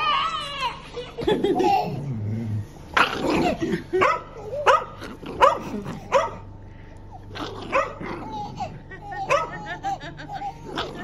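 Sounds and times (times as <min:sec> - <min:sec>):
dog barking: 0:04.0 - 0:06.4, 0:07.6 - 0:08.0, 0:09.2 - 0:09.6.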